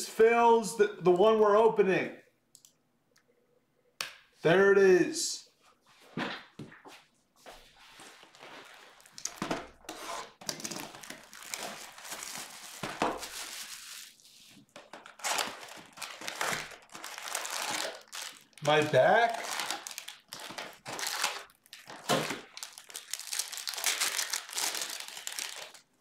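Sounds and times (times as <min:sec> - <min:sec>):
plastic wrapping rustling: 0:07.5 - 0:25.9.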